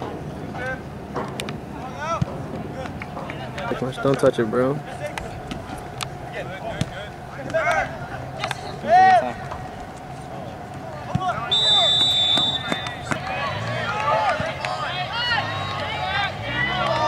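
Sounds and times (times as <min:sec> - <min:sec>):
players shouting: 0:01.7 - 0:17.0
referee's whistle: 0:11.4 - 0:13.2.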